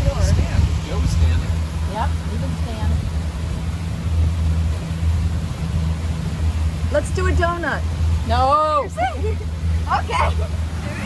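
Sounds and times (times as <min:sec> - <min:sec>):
outboard motor humming: 0:00.0 - 0:11.0.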